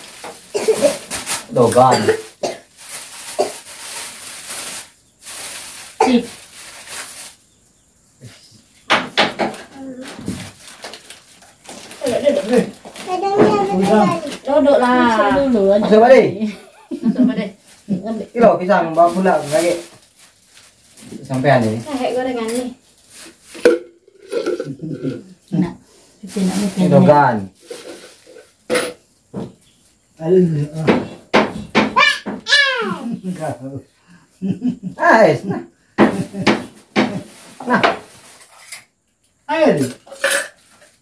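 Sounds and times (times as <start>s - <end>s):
plastic bags crinkling: 0.0s - 7.4s, 9.9s - 15.2s, 18.9s - 24.6s
people talking: 12.0s - 16.5s, 17.1s - 19.8s, 24.6s - 27.4s, 30.2s - 31.1s.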